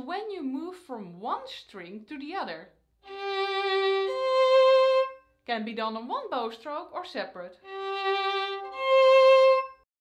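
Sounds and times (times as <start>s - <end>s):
bowed violin notes: 3.0s - 5.4s, 7.6s - 9.9s.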